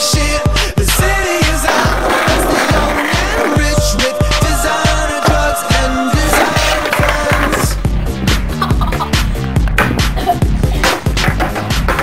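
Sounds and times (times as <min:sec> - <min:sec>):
upbeat song with steady beat: 0:00.0 - 0:12.0
skateboard rolling on concrete: 0:01.5 - 0:03.8, 0:06.2 - 0:07.8.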